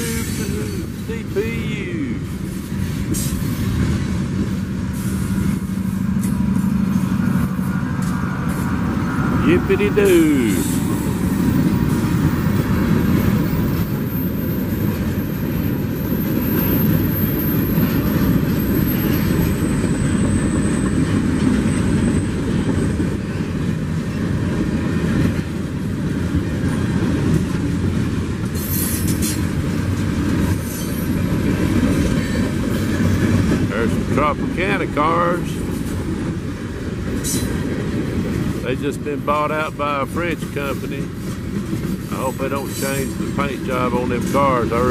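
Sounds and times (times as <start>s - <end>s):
train wheels rumbling on rails: 0.0s - 44.9s
clickety-clack over rail joints: 2.1s - 9.4s, 10.6s - 44.9s.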